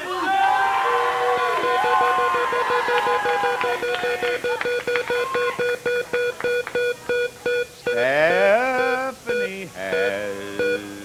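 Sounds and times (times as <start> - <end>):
audience shouting: 0.0 - 4.4.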